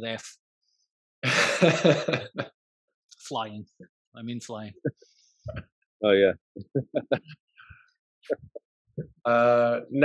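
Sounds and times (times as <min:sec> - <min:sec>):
man laughing breathily: 0:01.2 - 0:02.4, 0:06.8 - 0:07.3.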